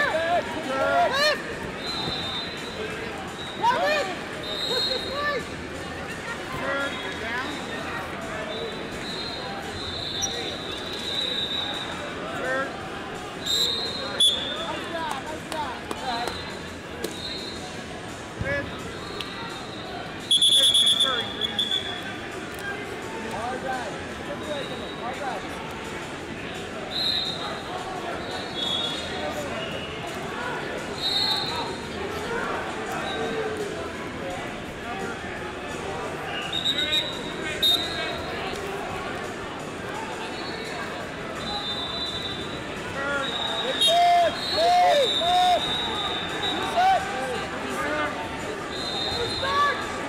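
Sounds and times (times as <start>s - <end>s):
crowd voices and shouting: 0.0s - 50.0s
referee whistle blasts: 1.8s - 2.8s, 8.5s - 12.0s, 13.4s - 14.7s, 20.2s - 22.0s, 26.9s - 27.5s, 28.3s - 29.9s, 31.0s - 31.8s, 36.4s - 38.1s, 41.4s - 46.9s, 48.7s - 49.8s.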